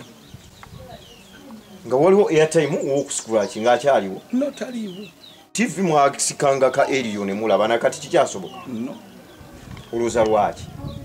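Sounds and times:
man speaking: 1.9s - 9.0s.

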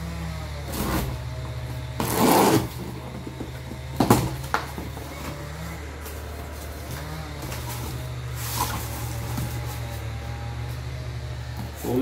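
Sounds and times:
steady low hum: 0.0s - 12.0s
packing tape tearing scrape: 0.7s - 1.2s, 2.0s - 3.0s, 7.4s - 10.0s.

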